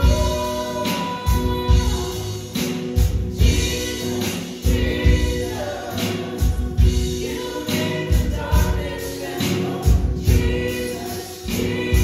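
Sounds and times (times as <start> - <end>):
acoustic guitar: 0.0 - 12.0
women singing: 0.0 - 12.0.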